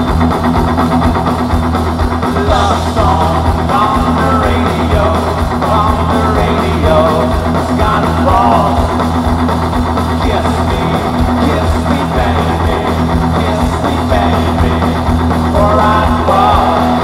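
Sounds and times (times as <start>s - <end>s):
live rock band playing: 0.0s - 17.0s.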